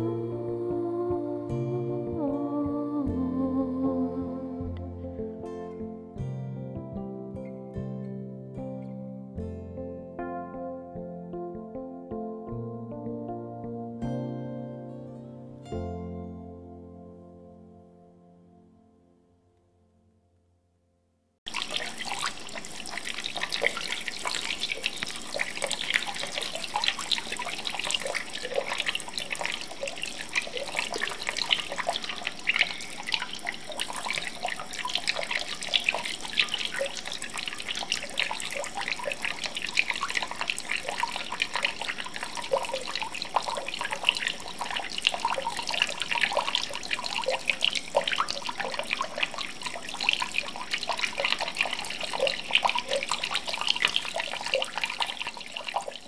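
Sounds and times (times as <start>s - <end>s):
water pouring and splashing: 21.5s - 56.0s.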